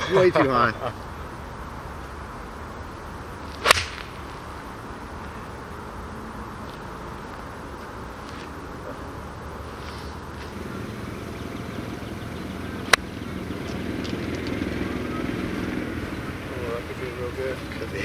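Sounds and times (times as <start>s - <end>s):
golf club striking ball: 3.6s - 4.2s.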